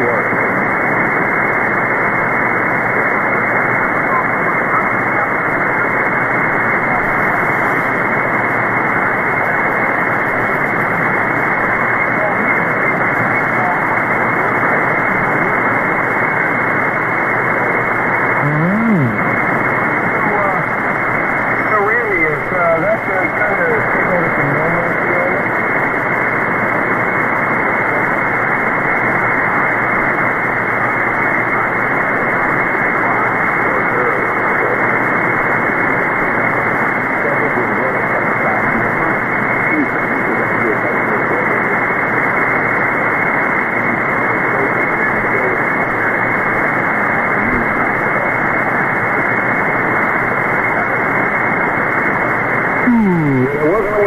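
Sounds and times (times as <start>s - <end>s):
radio static hiss: 0.0s - 54.0s
faint voice over radio: 3.8s - 8.0s, 11.8s - 15.9s, 18.4s - 19.4s, 31.4s - 35.3s, 37.1s - 41.9s, 43.8s - 48.3s, 52.8s - 54.0s.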